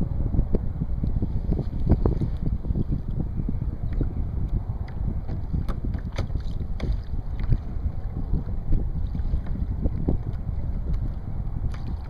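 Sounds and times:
wind buffeting microphone: 0.0 - 12.0
waves slapping against hull: 0.5 - 12.0.

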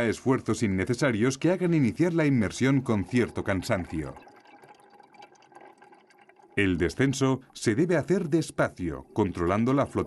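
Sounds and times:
underwater air bubbles fizzing: 1.2 - 10.0.

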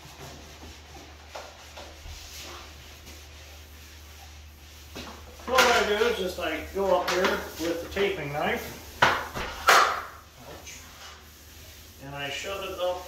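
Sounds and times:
man talking: 5.4 - 8.7, 12.0 - 13.0.

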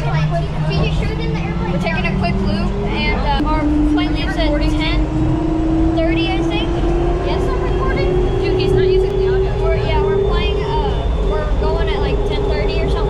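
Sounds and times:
constant low rumble: 0.0 - 13.0
electric tram drive whine: 0.0 - 13.0
voices talking: 0.0 - 13.0.

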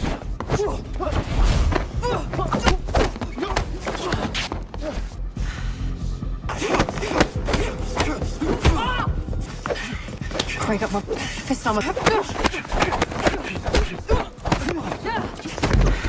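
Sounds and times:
film score music: 0.0 - 16.0
fighters grunting and crying out: 0.1 - 5.3, 6.4 - 16.0.

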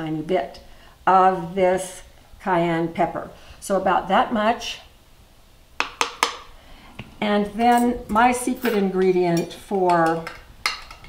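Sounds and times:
metal spoon tapping plastic: 9.9 - 11.0.

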